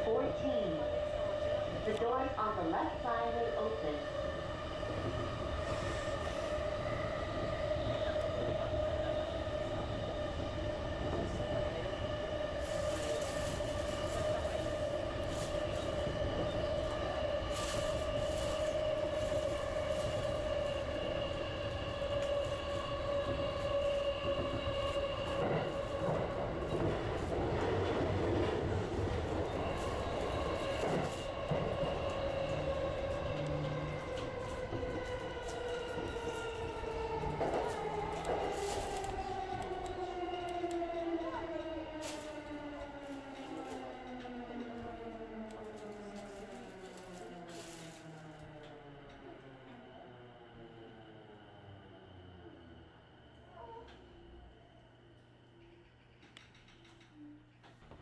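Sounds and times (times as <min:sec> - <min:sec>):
train wheel and rail noise: 0:00.0 - 0:58.0
electric train motor whine: 0:31.4 - 0:40.9.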